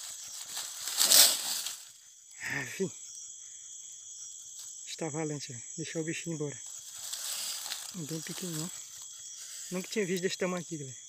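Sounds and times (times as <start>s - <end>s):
dry leaves and twigs rustling: 0.0s - 2.0s, 6.6s - 10.6s
insects chirping: 0.0s - 11.0s.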